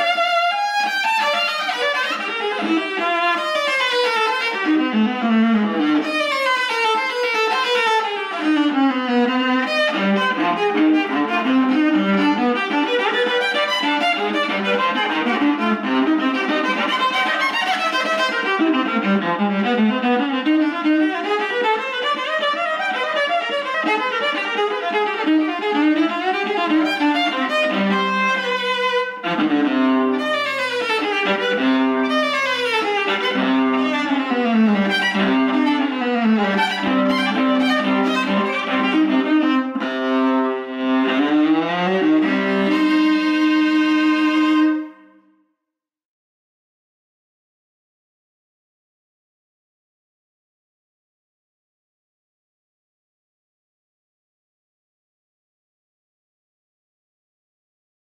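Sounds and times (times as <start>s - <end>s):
solo viola bowed runs: 0.0s - 45.2s.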